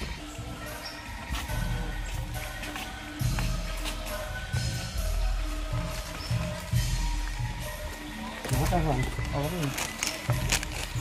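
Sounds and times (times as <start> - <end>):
faint music: 0.0 - 11.0
people talking: 8.5 - 9.8.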